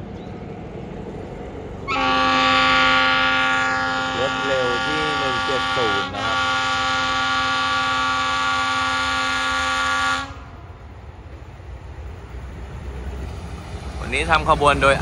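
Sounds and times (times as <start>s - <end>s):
low rumble of train: 0.0s - 15.0s
train horn blast: 1.9s - 10.8s.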